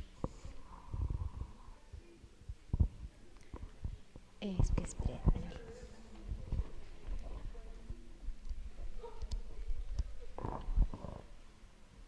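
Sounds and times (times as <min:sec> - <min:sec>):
murmured talk: 0:00.0 - 0:11.7.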